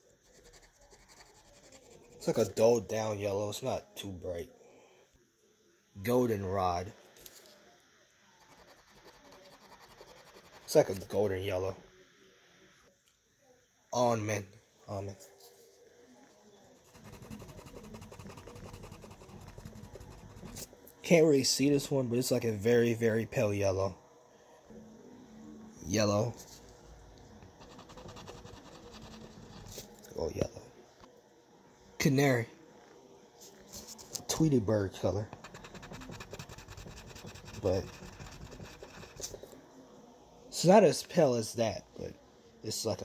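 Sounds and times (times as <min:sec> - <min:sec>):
crayon scribbling on paper: 0:00.2 - 0:02.4, 0:08.4 - 0:11.0, 0:16.9 - 0:20.7, 0:27.6 - 0:29.8, 0:35.3 - 0:39.4.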